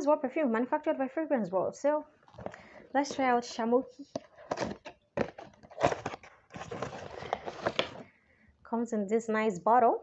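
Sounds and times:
cardboard box scraping and knocking: 4.1 - 8.0.

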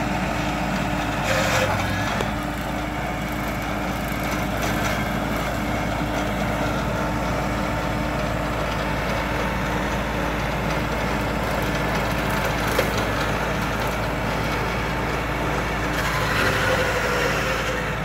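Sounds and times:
tractor diesel engine running: 0.0 - 18.0.

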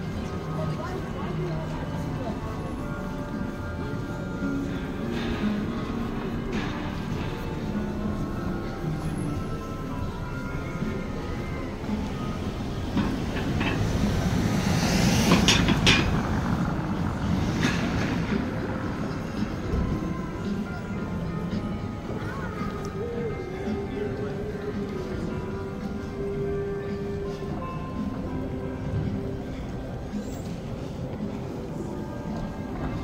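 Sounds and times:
faint music: 0.0 - 33.0
traffic noise: 0.0 - 33.0
vehicle passing close: 13.7 - 19.5.

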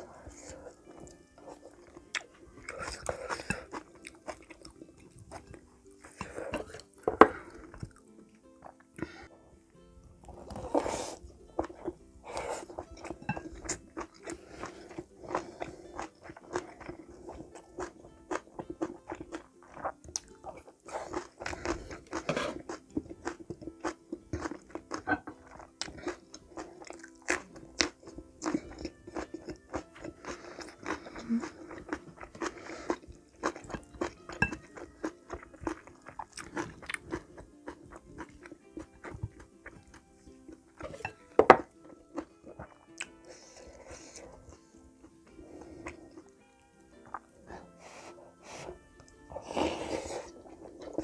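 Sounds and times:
chewing and crunching food: 0.0 - 9.4, 10.0 - 51.0.

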